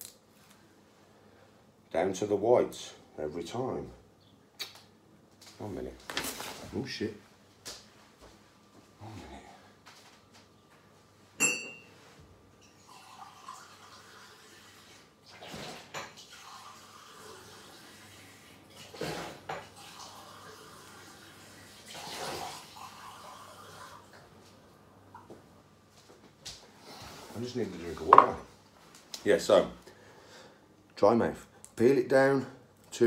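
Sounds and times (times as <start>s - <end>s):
sharp clink with ring: 11.4s - 11.9s.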